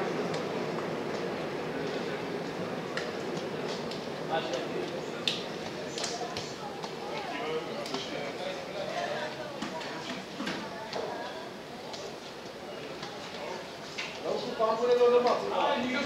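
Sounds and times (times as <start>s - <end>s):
background hubbub: 0.0s - 16.0s
voices talking and calling out: 1.5s - 16.0s.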